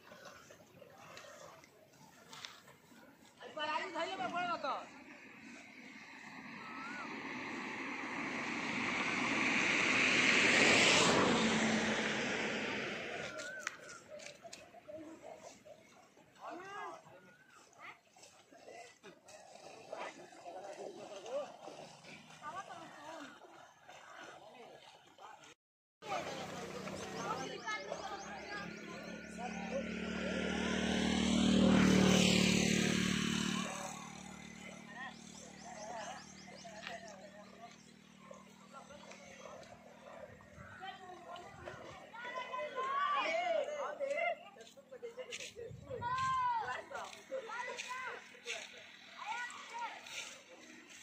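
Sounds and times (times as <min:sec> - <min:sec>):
engine passing by: 0:00.0 - 0:17.0, 0:18.2 - 0:25.4, 0:26.0 - 0:44.4, 0:45.2 - 0:51.0.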